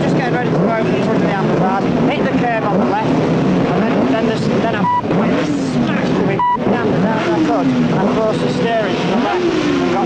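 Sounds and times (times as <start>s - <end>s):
motorcycle engines revving: 0.0s - 10.0s.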